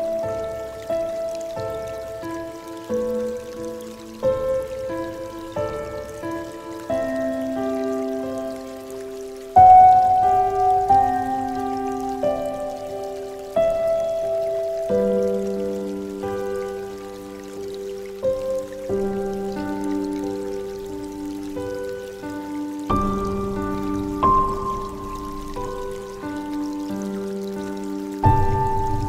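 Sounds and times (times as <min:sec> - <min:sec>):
gentle solo piano: 0:00.0 - 0:29.0.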